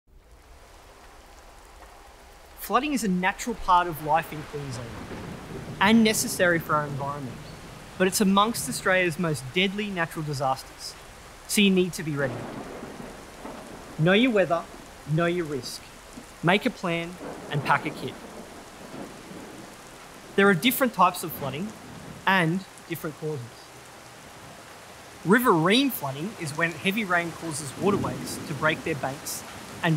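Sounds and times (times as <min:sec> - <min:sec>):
steady rain hiss: 0:00.1 - 0:29.9.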